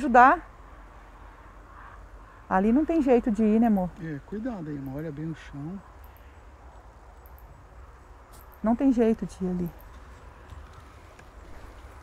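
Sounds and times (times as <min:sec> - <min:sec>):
faint highway traffic rumble: 0:00.0 - 0:12.0.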